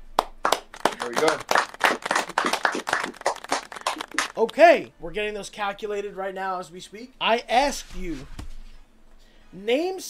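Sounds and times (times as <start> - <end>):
hands clapping: 0.1 - 4.6.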